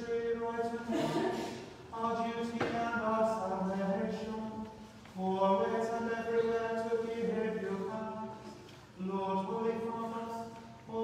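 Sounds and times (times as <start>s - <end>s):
liturgical chant: 0.0s - 11.0s.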